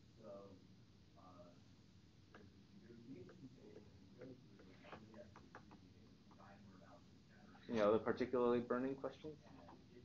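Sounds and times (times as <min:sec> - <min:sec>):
faint low murmur: 0:00.0 - 0:10.0.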